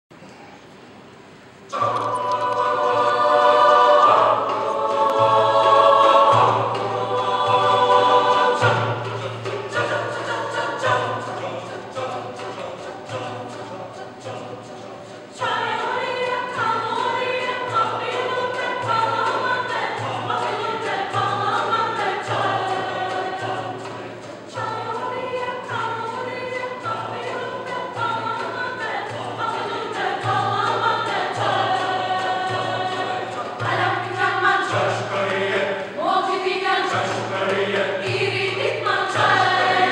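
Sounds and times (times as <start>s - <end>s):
mixed choir singing in harmony: 1.5s - 39.9s.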